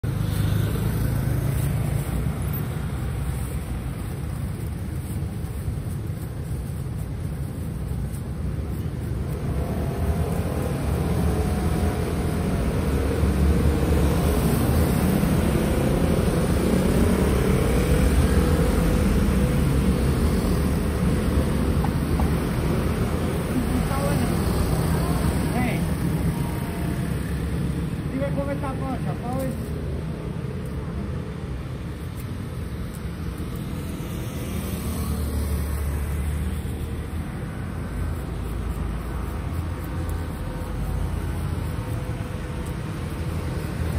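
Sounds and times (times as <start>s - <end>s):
vehicle engines rumbling: 0.0s - 43.9s.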